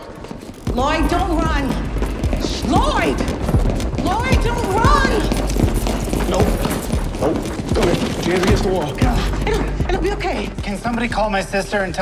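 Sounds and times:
scuffle: 0:00.0 - 0:11.0
people running on hard floor: 0:00.0 - 0:12.0.

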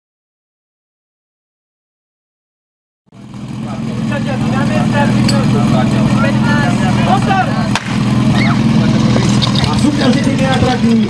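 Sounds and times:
small engine idling: 0:03.1 - 0:11.0
voices: 0:03.3 - 0:11.0.

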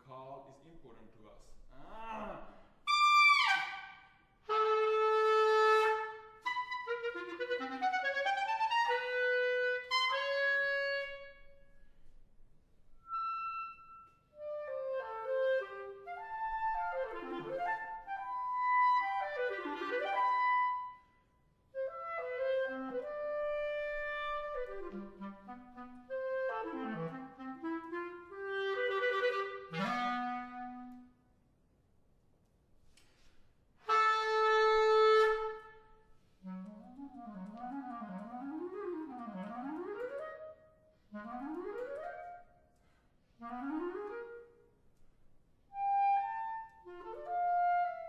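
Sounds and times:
solo clarinet playing: 0:02.9 - 0:11.9, 0:12.9 - 0:21.2, 0:21.8 - 0:31.2, 0:33.8 - 0:42.6, 0:43.4 - 0:44.8, 0:45.7 - 0:48.0.

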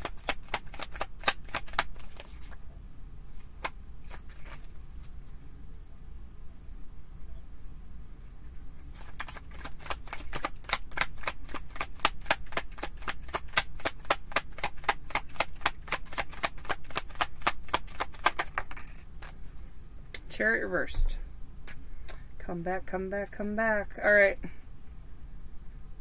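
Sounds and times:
cards being shuffled: 0:00.0 - 0:02.6, 0:03.3 - 0:05.2, 0:08.9 - 0:19.6.

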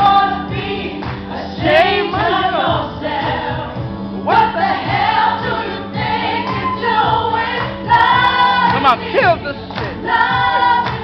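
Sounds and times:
instrumental backing track with beat: 0:00.0 - 0:11.0.

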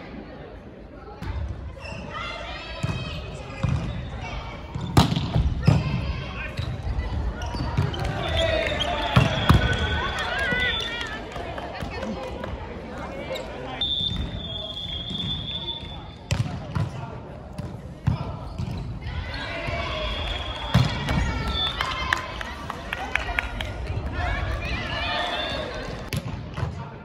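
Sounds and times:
players shouting calls: 0:05.6 - 0:17.0, 0:18.0 - 0:26.1.

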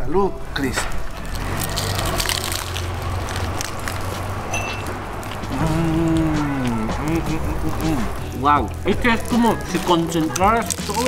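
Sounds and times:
crunching of crisp food being chewed: 0:00.6 - 0:11.0.

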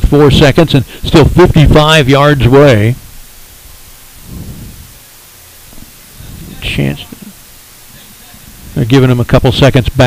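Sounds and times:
microphone line hiss: 0:00.0 - 0:10.0.

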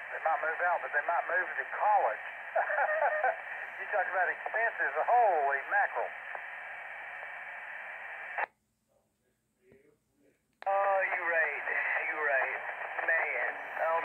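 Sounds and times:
voice over radio: 0:00.0 - 0:06.4, 0:10.6 - 0:14.0
radio static hiss: 0:00.0 - 0:08.5, 0:10.6 - 0:14.0
radio clicks: 0:10.6 - 0:14.0.

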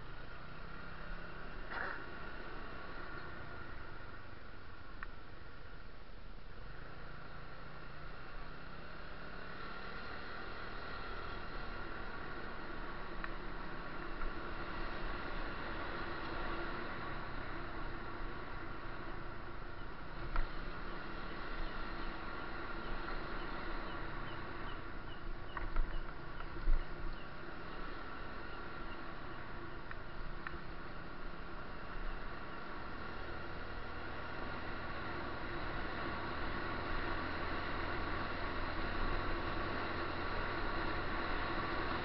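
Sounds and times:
constant drone of noise: 0:00.0 - 0:42.0
faint steady tones: 0:00.0 - 0:42.0.

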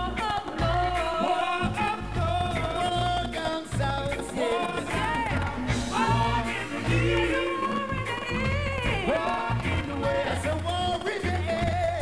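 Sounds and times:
live band music: 0:00.0 - 0:12.0
singer holding long notes: 0:00.0 - 0:12.0
steady bass line: 0:00.0 - 0:12.0.

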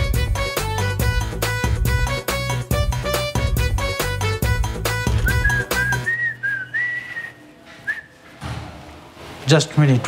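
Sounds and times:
person whistling a tune: 0:05.1 - 0:08.1.

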